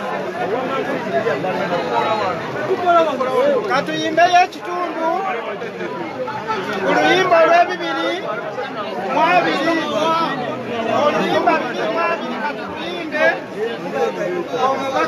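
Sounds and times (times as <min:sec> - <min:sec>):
people talking at once: 0:00.0 - 0:15.0.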